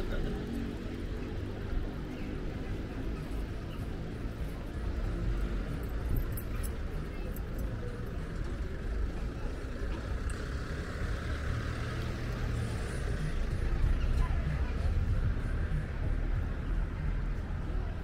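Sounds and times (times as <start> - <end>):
steady low city rumble: 0.0 - 18.0.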